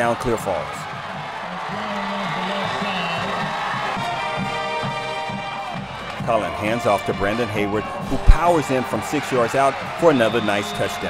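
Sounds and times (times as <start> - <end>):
music with low melody and beat: 0.9 - 8.6.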